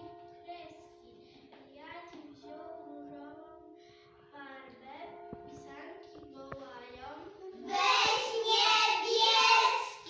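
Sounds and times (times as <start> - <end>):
instrumental accompaniment: 5.1 - 10.0
young children singing: 7.6 - 10.0.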